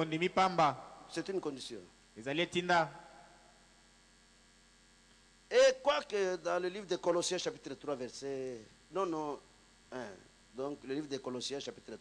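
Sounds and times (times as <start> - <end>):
man speaking: 0.0 - 3.2, 5.5 - 12.0
faint mains hum: 0.0 - 12.0.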